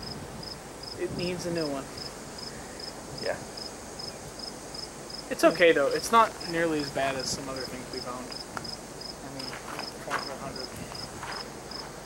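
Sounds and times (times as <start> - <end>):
insect chirping: 0.0 - 12.0.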